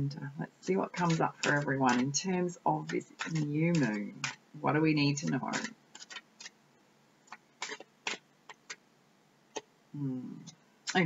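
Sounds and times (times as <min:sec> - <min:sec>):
cards being shuffled: 0:00.6 - 0:02.2, 0:02.8 - 0:04.4, 0:05.2 - 0:06.6, 0:07.3 - 0:08.8.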